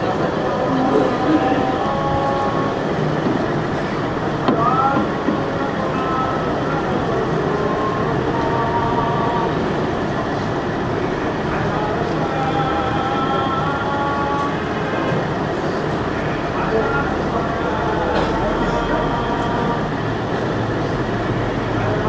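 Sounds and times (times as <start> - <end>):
faint indistinct voices: 0.0 - 22.0
loud background noise: 0.0 - 22.0.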